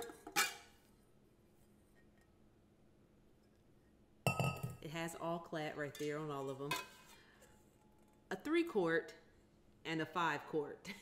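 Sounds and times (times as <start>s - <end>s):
metal mixing bowls knocking: 4.3s - 4.8s.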